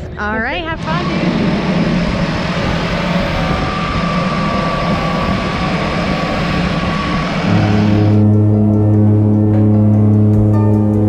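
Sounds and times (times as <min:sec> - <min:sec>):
steady music tones: 0:00.0 - 0:11.0
turboprop engine running: 0:00.0 - 0:11.0.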